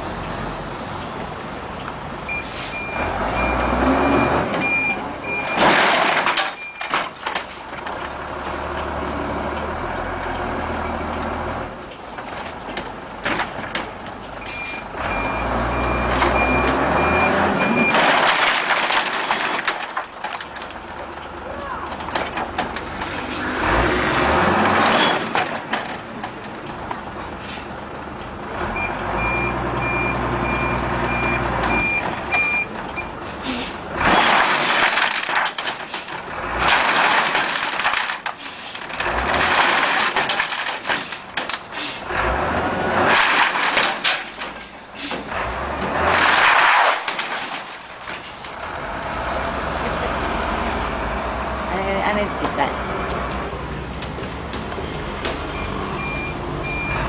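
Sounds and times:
reversing beeper: 0:02.3 - 0:05.7, 0:14.4 - 0:18.0, 0:52.2 - 0:57.0.

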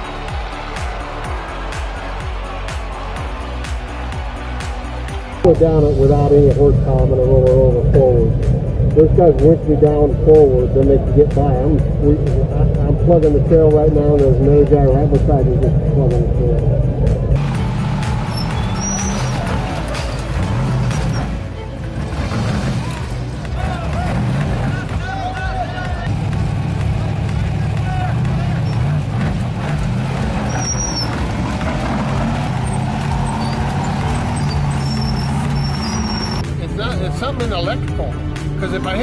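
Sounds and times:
off-road buggy engine running: 0:00.0 - 0:39.0.

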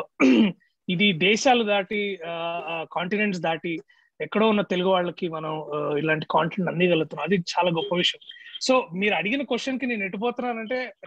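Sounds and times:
man speaking over video call: 0:00.0 - 0:11.0.

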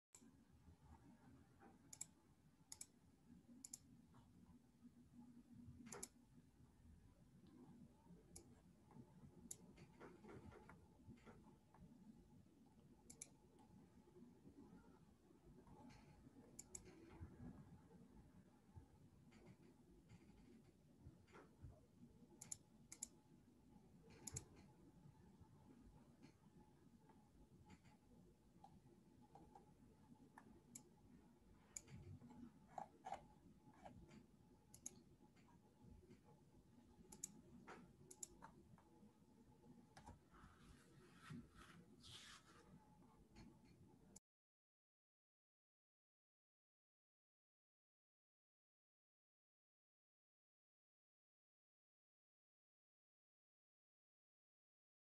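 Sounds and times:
faint steady hum: 0:00.1 - 0:44.2
faint clicks: 0:01.6 - 0:02.9, 0:15.7 - 0:17.2, 0:33.8 - 0:36.3, 0:37.1 - 0:38.9.

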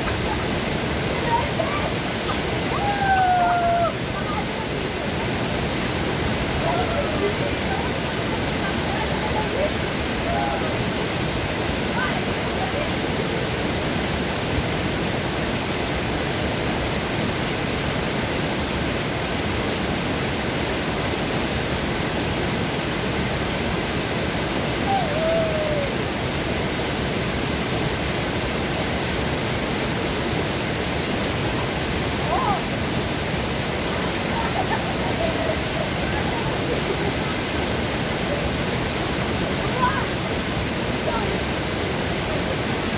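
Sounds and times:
waterfall rushing: 0:00.0 - 0:42.9.

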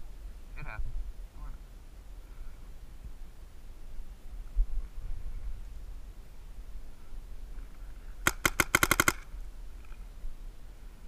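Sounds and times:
paintball marker firing rapidly: 0:08.2 - 0:09.3.

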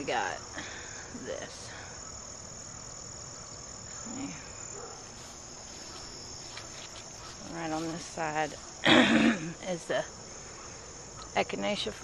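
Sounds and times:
insects trilling: 0:00.0 - 0:12.0.

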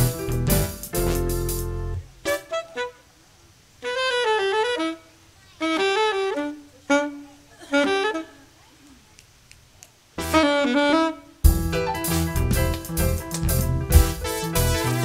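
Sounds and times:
saxophone melody: 0:00.0 - 0:03.1, 0:03.8 - 0:08.5, 0:10.2 - 0:12.8, 0:13.8 - 0:15.0.

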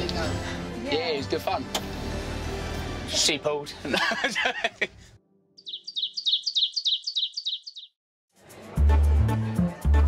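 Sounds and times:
bird chirping falling notes: 0:05.6 - 0:08.0.

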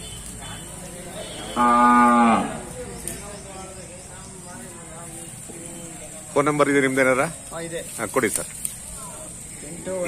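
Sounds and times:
cow mooing: 0:01.4 - 0:02.6.

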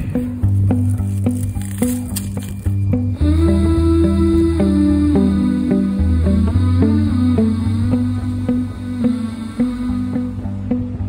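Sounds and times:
gentle instrumental music: 0:00.0 - 0:11.0.

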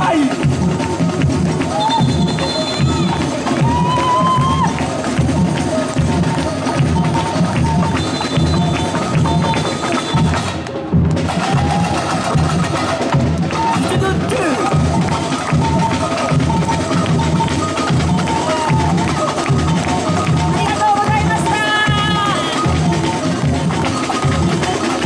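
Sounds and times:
hand percussion strikes: 0:00.0 - 0:25.0.

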